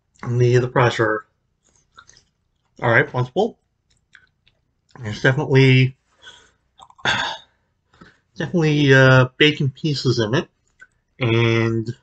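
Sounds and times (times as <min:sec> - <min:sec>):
man's breathy vocal noise: 0:07.0 - 0:07.4.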